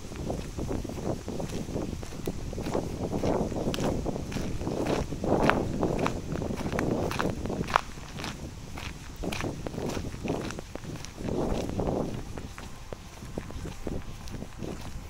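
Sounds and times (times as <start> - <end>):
footsteps crunching on gravel: 0.0 - 15.0.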